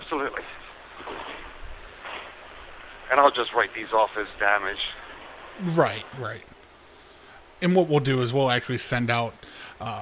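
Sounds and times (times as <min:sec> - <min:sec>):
telephone line hiss: 0:00.0 - 0:10.0.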